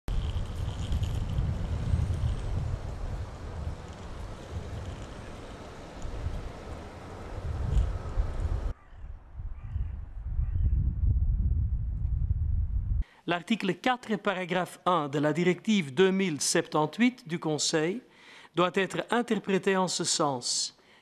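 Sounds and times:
low traffic rumble: 0:00.1 - 0:08.8.

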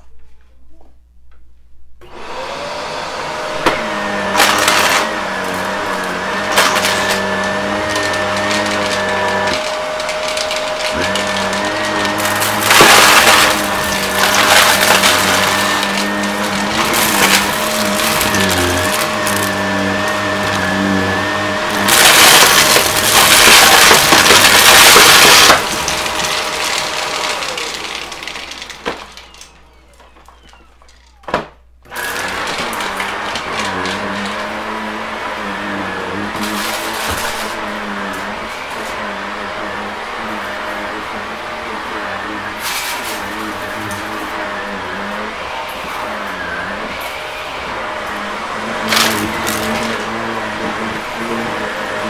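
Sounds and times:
vacuum cleaner motor whine: 0:02.0 - 0:52.0
debris rattling in vacuum: 0:02.2 - 0:31.3, 0:31.9 - 0:52.0.

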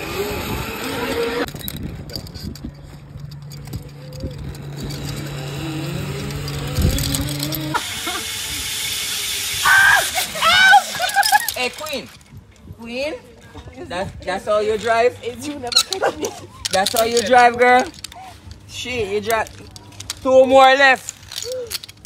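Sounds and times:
zip-line trolley whirring on cable: 0:00.0 - 0:11.8
people laughing and shouting: 0:09.7 - 0:12.0, 0:15.7 - 0:18.6.

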